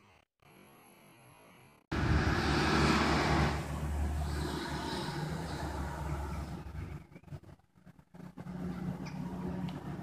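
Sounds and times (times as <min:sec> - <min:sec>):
vehicle passing with low rumble: 0:01.9 - 0:10.0.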